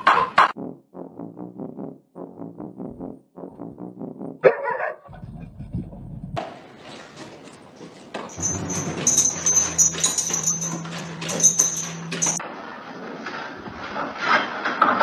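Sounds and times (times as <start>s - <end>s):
dog barking: 4.4s - 5.1s
dog eating from a bowl: 8.3s - 12.4s.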